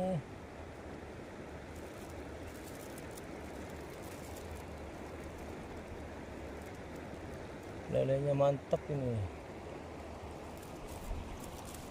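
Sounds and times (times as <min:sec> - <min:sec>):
stream water running: 0:00.0 - 0:11.9.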